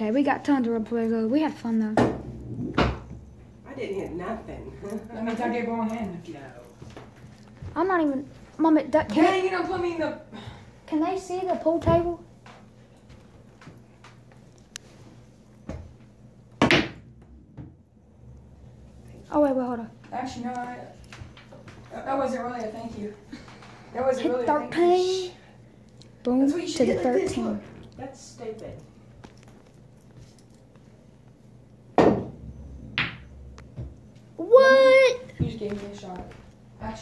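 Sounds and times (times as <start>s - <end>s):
pool balls knocking: 2.0s - 3.6s, 16.5s - 19.1s, 31.9s - 34.2s.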